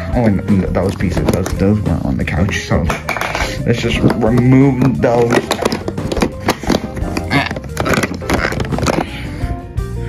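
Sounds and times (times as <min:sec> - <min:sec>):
background music: 0:00.0 - 0:10.0
plastic blocks knocking and clattering: 0:00.7 - 0:09.3.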